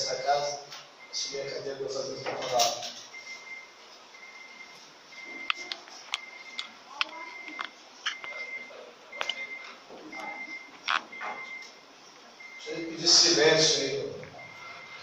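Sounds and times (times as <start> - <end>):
high electronic beep: 7.3 - 11.7.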